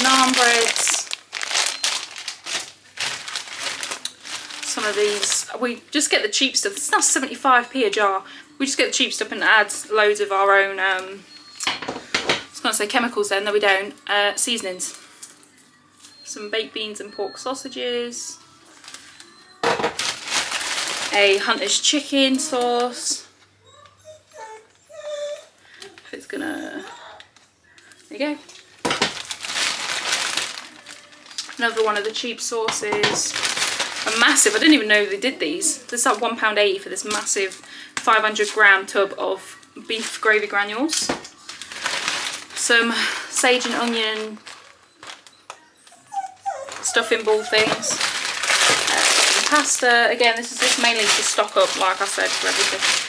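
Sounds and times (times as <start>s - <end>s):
grocery bags rustling: 0.0s - 23.4s, 25.1s - 53.0s.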